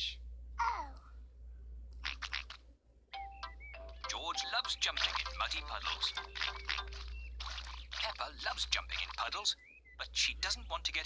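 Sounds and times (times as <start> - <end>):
bell-like chiming cartoon music: 3.2 - 7.1.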